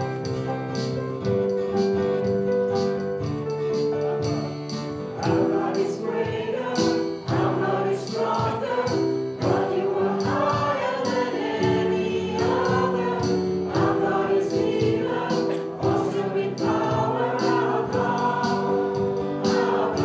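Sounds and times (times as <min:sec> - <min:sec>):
steady drum beat: 0:00.0 - 0:20.0
worship band playing: 0:00.0 - 0:20.0
congregation singing a hymn: 0:03.6 - 0:20.0.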